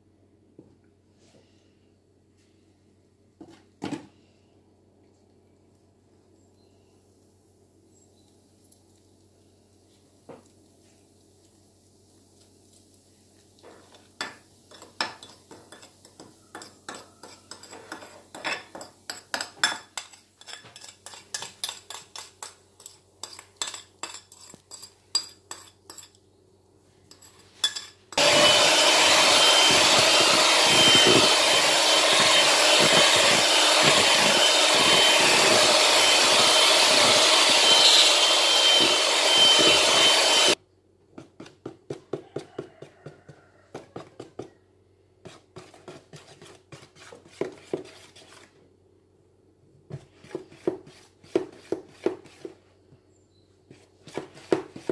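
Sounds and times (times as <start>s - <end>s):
electric hand mixer whining: 28.2s - 40.6s.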